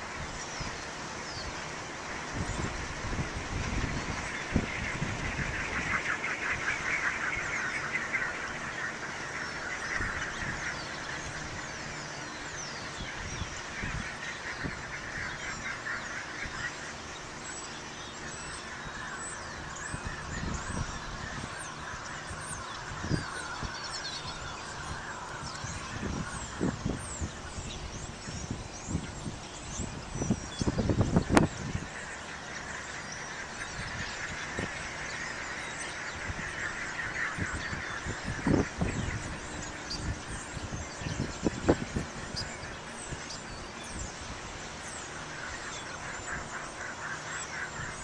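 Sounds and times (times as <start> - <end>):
wind buffeting microphone: 0.0 - 17.4, 18.6 - 32.5, 33.3 - 46.6
small birds chirping: 0.0 - 48.0
wind turbine whirring: 0.0 - 48.0.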